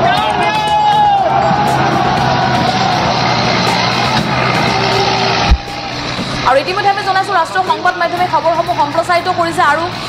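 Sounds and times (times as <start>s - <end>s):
voices: 0.0s - 10.0s
vehicle engine running: 1.2s - 10.0s
thump: 5.5s - 6.4s.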